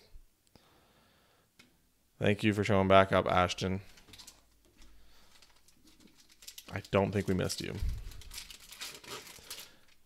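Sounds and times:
trading cards rustling: 3.9s - 10.0s
foil pack being handled: 4.0s - 10.0s.

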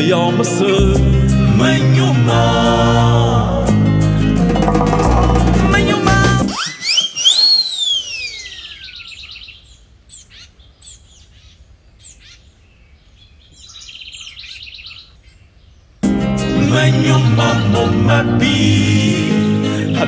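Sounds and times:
music: 0.0s - 6.6s, 16.0s - 20.0s
whistle-like tone sliding down: 6.4s - 9.0s
small birds chirping and trilling: 6.6s - 16.0s.

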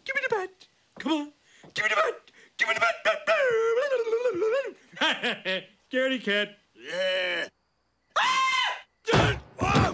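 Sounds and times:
high-pitched cartoon scream: 8.1s - 9.9s.

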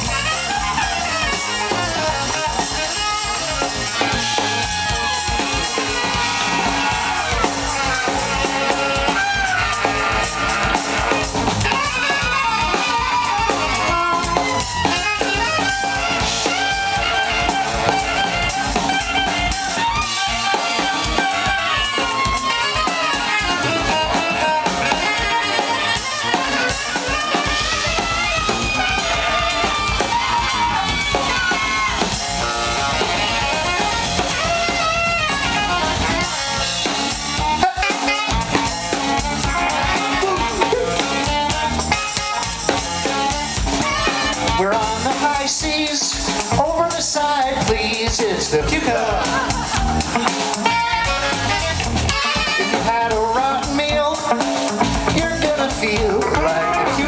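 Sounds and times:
saxophones playing melody: 0.0s - 45.4s, 48.9s - 53.3s
drum kit: 0.0s - 57.0s.

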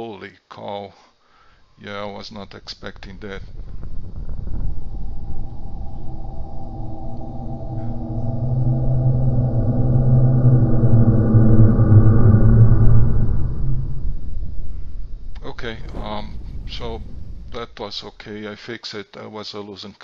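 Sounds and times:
cinematic rumble with deep drone: 1.4s - 18.5s.

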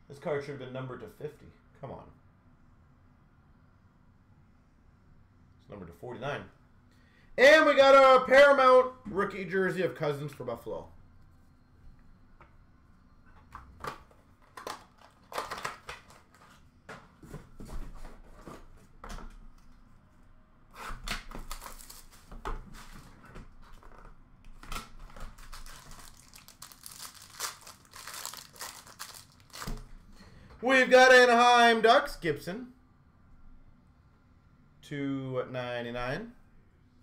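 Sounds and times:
wrapper crinkling: 14.4s - 16.4s, 21.4s - 22.1s, 25.1s - 29.9s
card packs tearing open: 14.5s - 16.4s, 21.2s - 22.2s, 25.0s - 29.8s
cards shuffled: 21.1s - 22.9s, 23.7s - 29.9s.

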